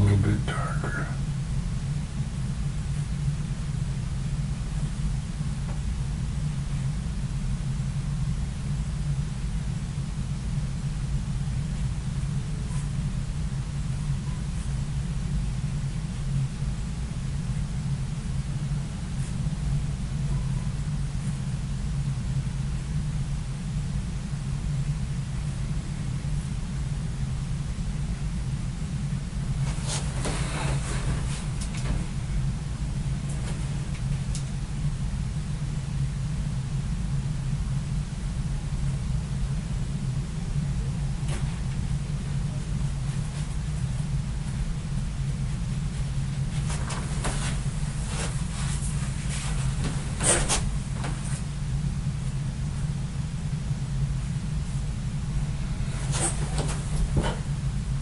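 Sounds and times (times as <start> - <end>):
low background hum: 0.0 - 58.0
scratchy rustle: 29.6 - 32.2, 46.5 - 51.5, 55.6 - 57.5.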